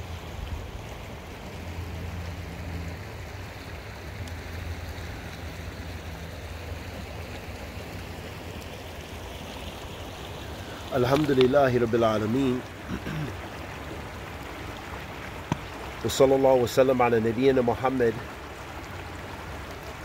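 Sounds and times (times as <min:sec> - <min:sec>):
river flowing over stones: 0:00.0 - 0:20.0.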